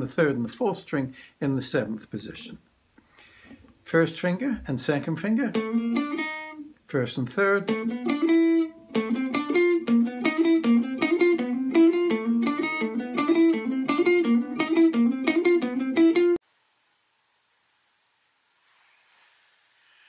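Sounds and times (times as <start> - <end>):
electric guitar picked notes: 5.4 - 6.7, 7.4 - 16.4.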